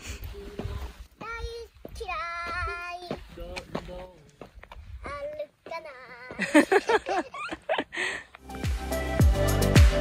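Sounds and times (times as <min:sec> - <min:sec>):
girl singing: 0:00.6 - 0:03.4, 0:05.0 - 0:06.6.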